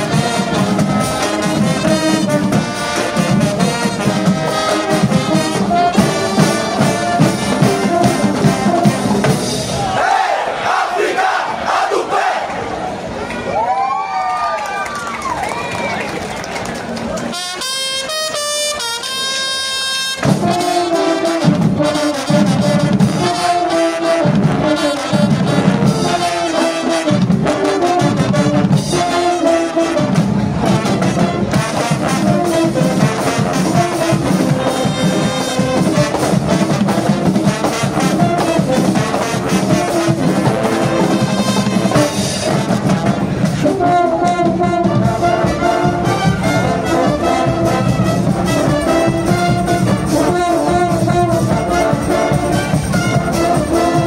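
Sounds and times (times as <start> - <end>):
brass marching band playing: 0.0 - 13.4, 15.2 - 54.0.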